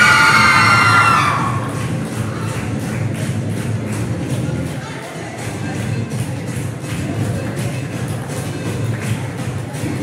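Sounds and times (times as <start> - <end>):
children cheering: 0.0 - 1.8
dance music over speakers: 0.0 - 10.0.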